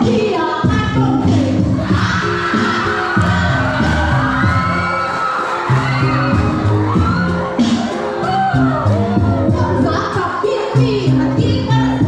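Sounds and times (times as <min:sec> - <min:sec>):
loud amplified music with bass: 0:00.0 - 0:12.0
crowd cheering and shouting: 0:01.2 - 0:12.0.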